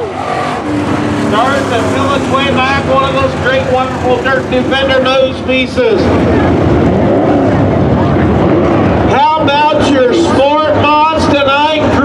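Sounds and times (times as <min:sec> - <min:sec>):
race car engines running: 0:00.0 - 0:12.0
man talking: 0:01.3 - 0:06.2, 0:09.1 - 0:12.0.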